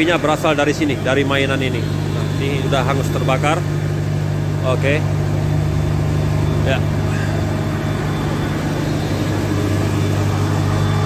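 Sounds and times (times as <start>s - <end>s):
fire truck engine humming: 0.0s - 11.0s.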